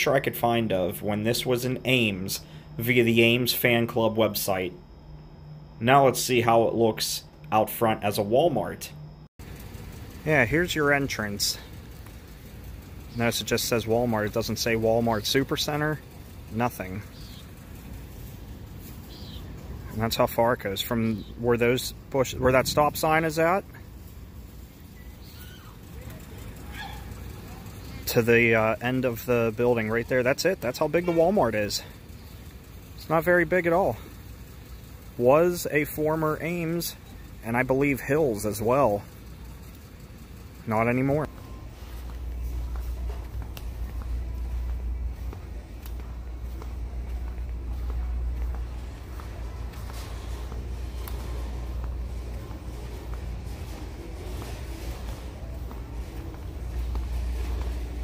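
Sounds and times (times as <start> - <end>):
low outdoor rumble: 0.0 - 58.0
faint high chirps: 24.6 - 28.1
footsteps: 41.2 - 58.0.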